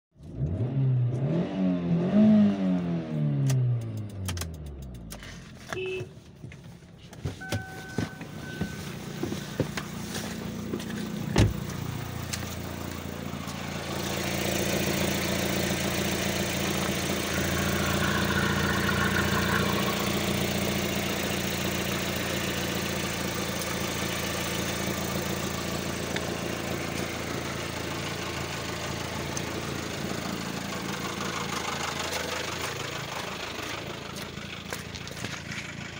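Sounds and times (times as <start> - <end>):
car engine idling: 6.7 - 35.9
short beep: 7.4 - 9.0.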